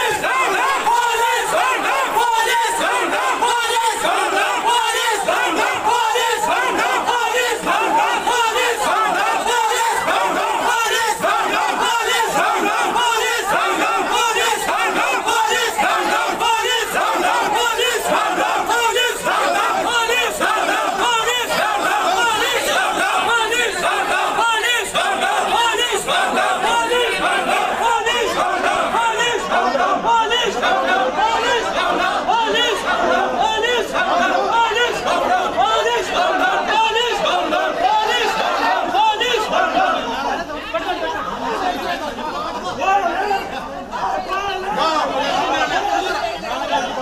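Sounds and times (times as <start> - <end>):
crowd of protesters shouting: 0.0 - 47.0.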